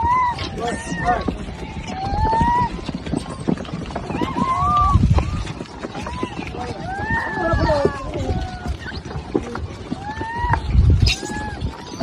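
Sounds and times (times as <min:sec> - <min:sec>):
monkeys squealing: 0:00.0 - 0:03.3, 0:04.1 - 0:12.0
monkeys scrambling: 0:00.0 - 0:12.0.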